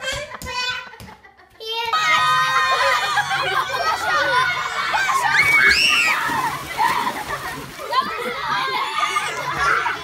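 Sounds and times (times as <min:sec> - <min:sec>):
children's voices: 0:01.6 - 0:10.0
pool water splashing: 0:02.2 - 0:10.0.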